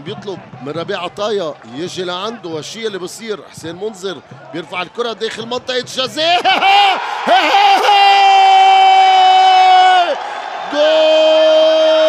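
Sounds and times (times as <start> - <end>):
commentator shouting goal: 5.3 - 12.0.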